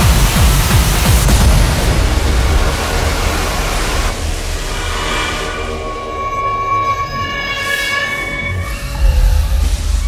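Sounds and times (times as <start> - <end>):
deep bass rumble: 0.0 - 7.4
electronic hardcore music: 0.0 - 10.0.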